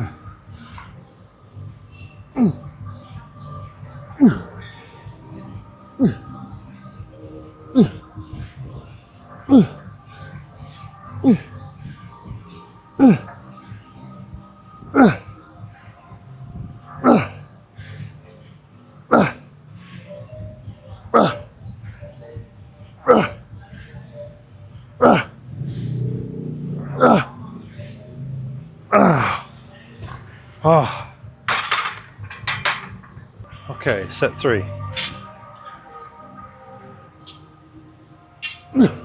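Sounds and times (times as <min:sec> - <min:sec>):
man grunting with effort: 0:15.0 - 0:15.3, 0:17.0 - 0:17.4, 0:19.1 - 0:19.4, 0:21.1 - 0:21.5, 0:23.0 - 0:23.4, 0:25.0 - 0:25.4, 0:26.8 - 0:27.5, 0:28.9 - 0:29.5, 0:30.6 - 0:31.1, 0:38.7 - 0:39.0.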